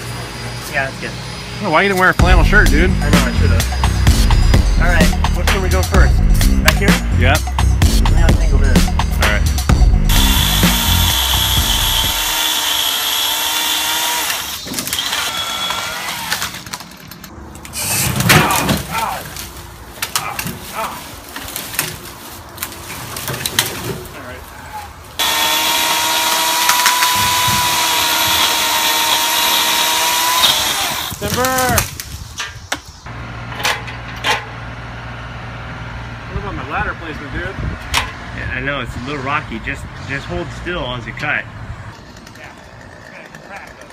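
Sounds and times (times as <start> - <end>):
electric chainsaw motor whining: 10.1 - 16.7, 25.2 - 31.7
tree branch cracking: 18.4 - 23.8.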